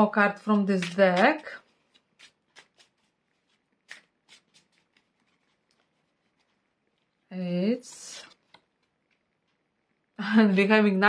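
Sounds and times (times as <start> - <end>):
tarot cards clicking: 0.7 - 5.9.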